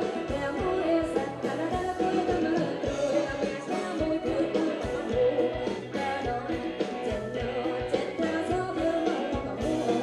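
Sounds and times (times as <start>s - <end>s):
live band dance music: 0.0s - 10.0s
person singing: 0.0s - 10.0s
steady drum beat: 0.0s - 10.0s.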